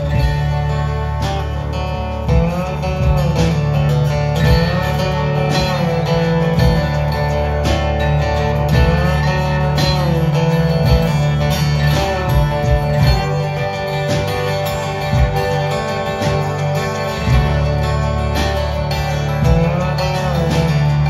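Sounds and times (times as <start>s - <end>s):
slide guitar notes gliding: 0.0s - 21.0s
strummed guitar: 0.0s - 21.0s.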